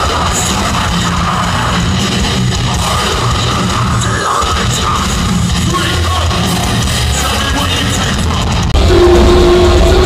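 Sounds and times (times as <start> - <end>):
distorted heavy metal band: 0.0 - 10.0.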